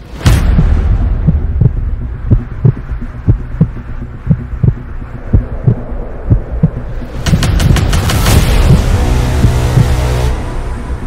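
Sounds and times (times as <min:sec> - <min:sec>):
low drone: 0:00.0 - 0:11.0
heartbeat thumps: 0:00.3 - 0:10.1.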